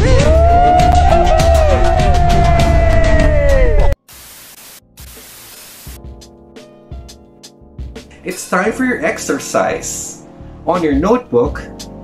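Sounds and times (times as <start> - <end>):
tv static hiss: 4.0 - 6.0.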